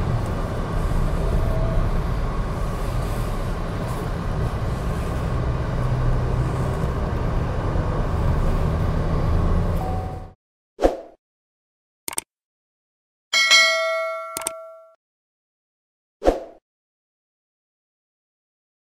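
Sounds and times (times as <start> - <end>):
car engine drone: 0.0 - 10.4
road and tyre noise: 0.0 - 10.4.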